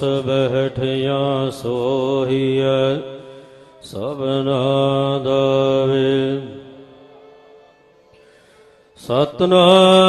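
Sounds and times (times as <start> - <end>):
man chanting: 0.0 - 7.5, 9.0 - 10.0.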